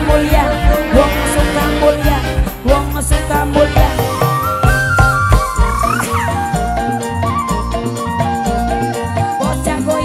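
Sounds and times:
live instrumental band music: 0:00.0 - 0:10.0.

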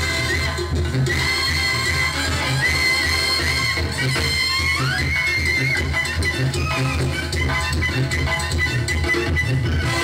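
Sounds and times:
brass band playing: 0:00.0 - 0:10.0.

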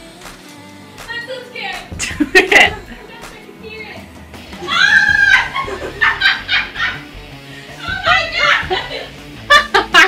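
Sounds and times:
woman laughing: 0:02.0 - 0:03.0, 0:04.7 - 0:07.1, 0:07.8 - 0:10.0
woman squealing: 0:04.6 - 0:05.7.

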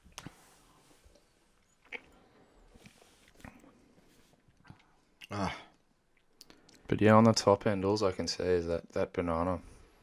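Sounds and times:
faint clicks: 0:04.5 - 0:07.4.

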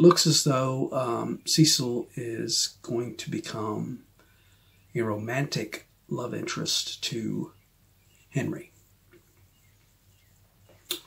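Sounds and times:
mouth click: 0:10.8 - 0:11.0.

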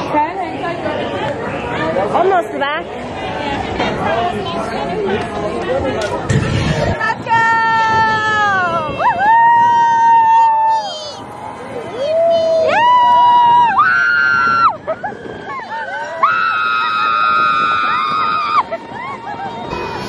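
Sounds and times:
roller coaster riders screaming: 0:07.6 - 0:20.0.

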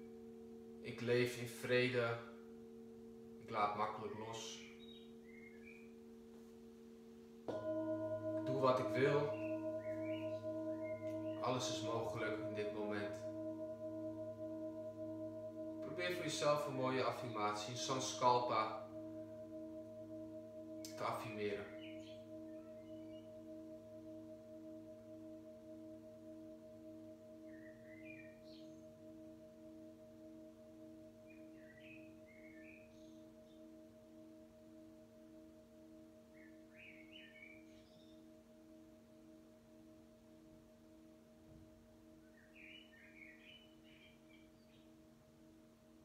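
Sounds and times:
metal singing bowl ringing: 0:07.4 - 0:42.9
faint high chirps: 0:08.4 - 0:12.8.

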